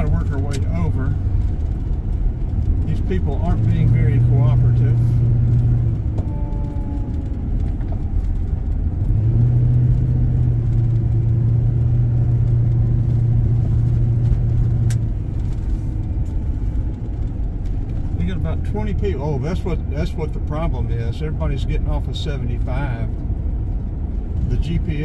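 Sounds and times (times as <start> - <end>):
low hum: 0.0 - 24.6
car engine and tyres rumbling: 0.0 - 25.0.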